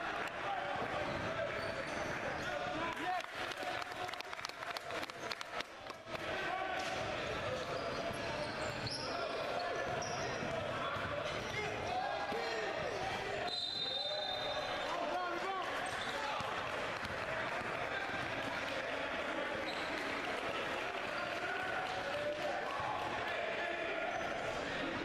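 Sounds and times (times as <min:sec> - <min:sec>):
players and spectators calling out: 0:06.1 - 0:25.0.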